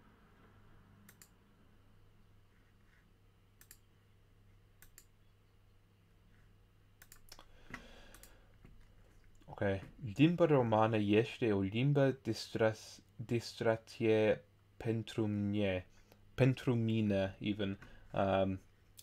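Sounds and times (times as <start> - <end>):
faint low hum: 0.0 - 19.0
computer mouse clicks: 1.0 - 1.4, 3.6 - 3.9, 4.8 - 5.2, 7.0 - 9.4.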